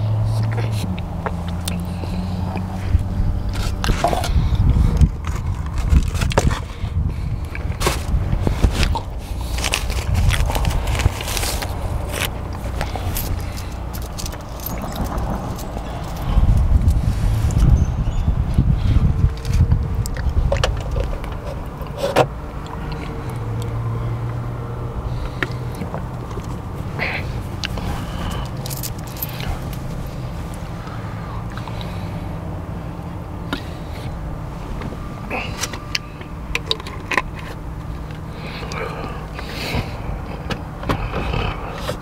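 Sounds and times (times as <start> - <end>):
car rumble inside cabin: 0.0 - 42.0.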